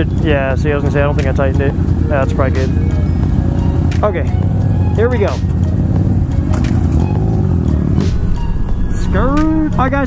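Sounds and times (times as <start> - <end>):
motorcycle engines idling: 0.0 - 10.0.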